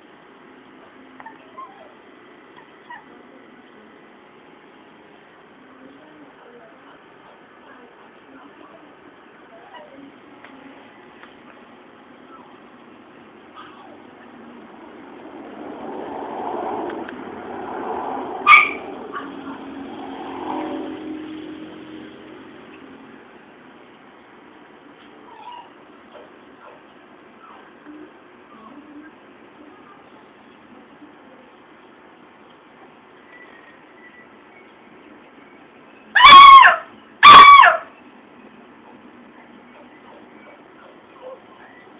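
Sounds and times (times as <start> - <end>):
dog yelping: 1.2 - 2.0, 13.5 - 14.0, 18.4 - 19.6, 25.2 - 26.8, 36.2 - 37.9, 39.8 - 41.9
dog barking: 18.4 - 19.7, 36.2 - 37.9.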